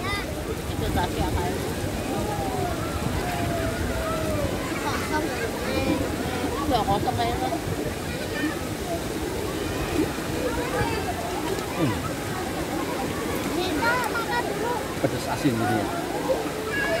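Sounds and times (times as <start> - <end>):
voices chattering and calling: 0.0 - 17.0
water rushing: 0.0 - 17.0.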